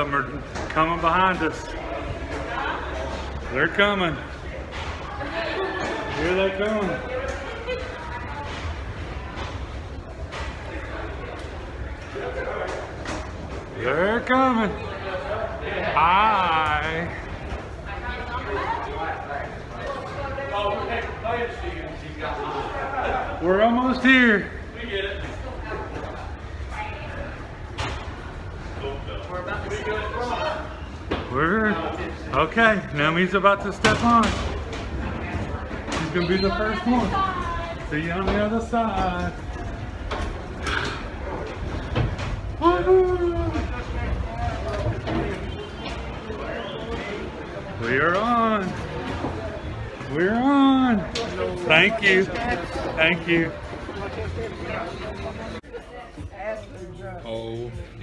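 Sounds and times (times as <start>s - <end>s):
faint voices: 0.0s - 58.0s
man speaking: 50.1s - 53.6s.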